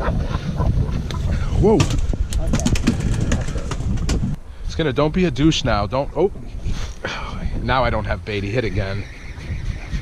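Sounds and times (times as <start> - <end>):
wind buffeting the microphone: 0.0 - 10.0.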